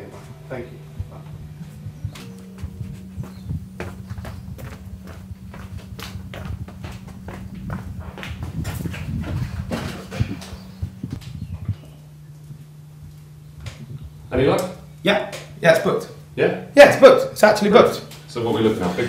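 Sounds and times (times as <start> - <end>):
low steady hum: 0.0 - 19.0
footsteps on wooden floor: 1.0 - 11.8.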